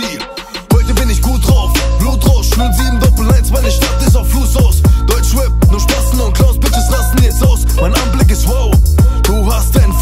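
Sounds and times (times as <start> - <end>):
hip hop beat with sliding bass: 0.0 - 10.0
person rapping: 0.0 - 10.0.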